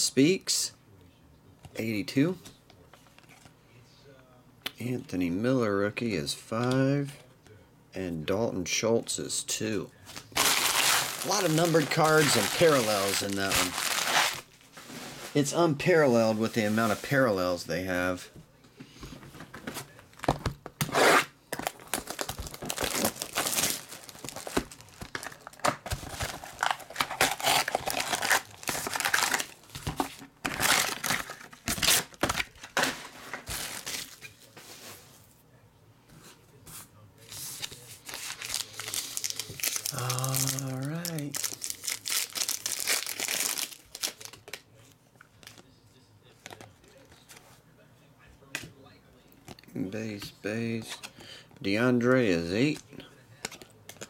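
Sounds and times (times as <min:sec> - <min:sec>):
card pack wrappers tearing: 0:10.1 - 0:14.5, 0:20.9 - 0:34.3, 0:37.6 - 0:44.6.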